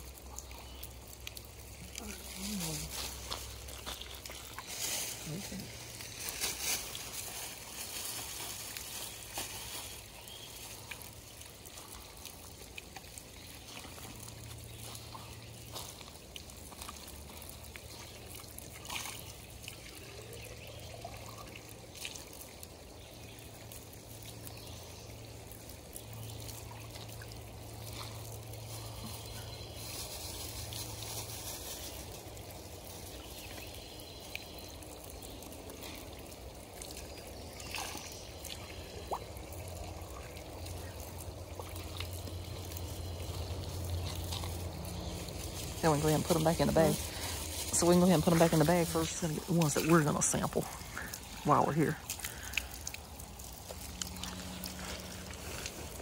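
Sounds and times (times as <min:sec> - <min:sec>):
water pouring and splashing: 0:00.0 - 0:56.0.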